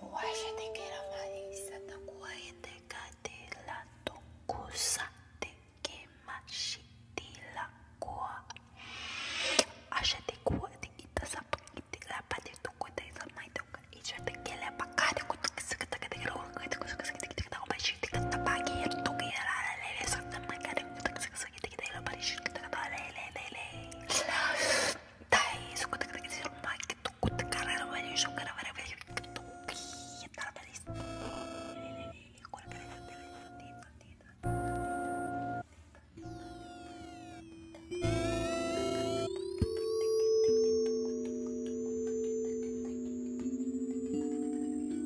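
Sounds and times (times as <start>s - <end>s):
woman whispering: 0.0s - 8.6s, 9.9s - 30.9s, 31.8s - 34.5s
soft music: 0.0s - 8.8s, 9.5s - 45.0s
held tones: 36.2s - 45.0s.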